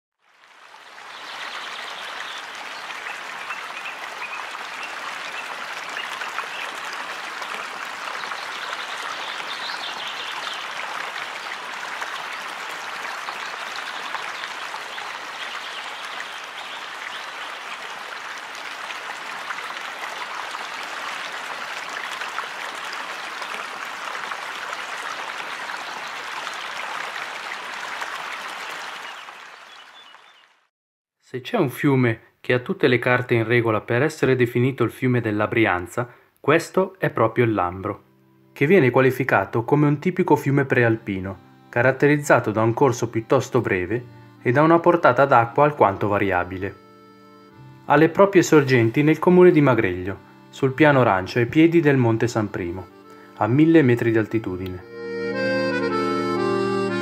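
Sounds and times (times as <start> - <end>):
stream rushing: 0.2 - 29.7.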